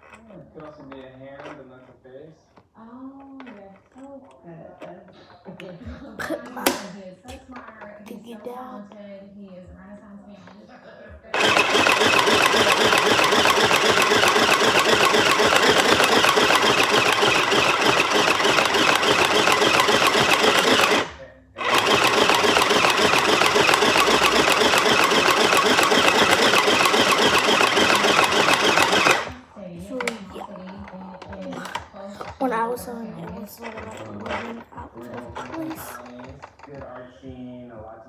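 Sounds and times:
electric sewing machine running: 11.3 - 37.0.

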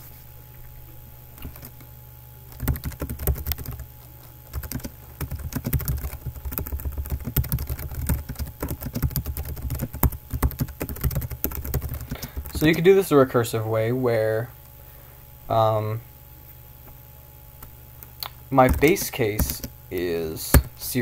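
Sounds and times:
computer keyboard typing: 1.4 - 1.9, 2.5 - 3.8, 4.5 - 12.9, 17.6 - 20.7.

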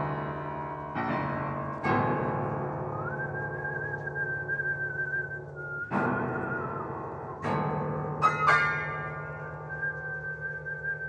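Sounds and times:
sustained piano chords: 0.0 - 11.0.

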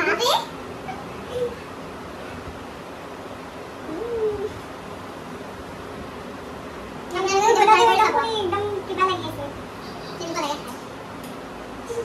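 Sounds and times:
steady background hiss: 0.0 - 12.0
young woman humming: 3.9 - 4.6.

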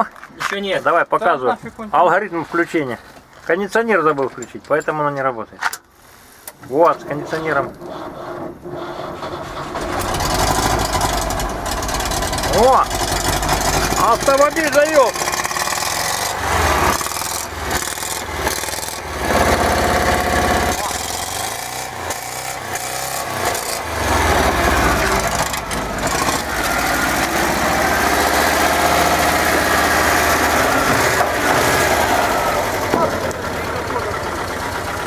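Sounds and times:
engine idling: 7.0 - 35.0.

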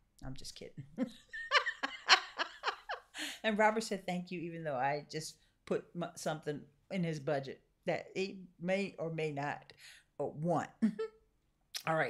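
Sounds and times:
woman laughing: 1.0 - 3.4.

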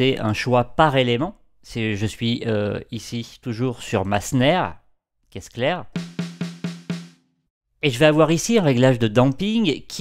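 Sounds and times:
snare drum hits ringing: 6.0 - 7.2.

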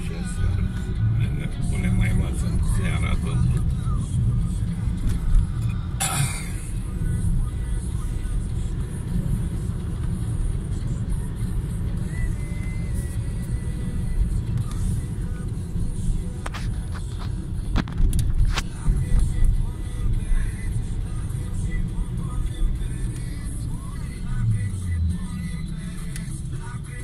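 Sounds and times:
car engine and road rumble: 0.0 - 27.0.

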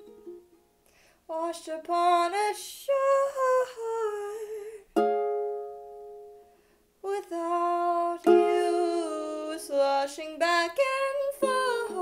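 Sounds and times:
ukulele chord strummed: 0.0 - 0.8, 5.0 - 6.5, 7.5 - 12.0.

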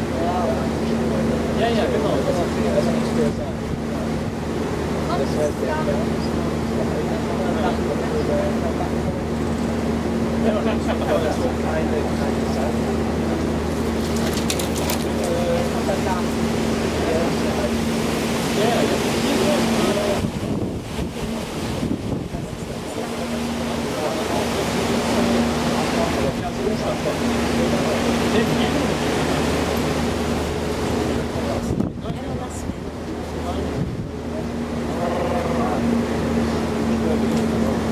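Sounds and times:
boat engine humming: 0.0 - 37.9
water rushing: 0.0 - 37.9.

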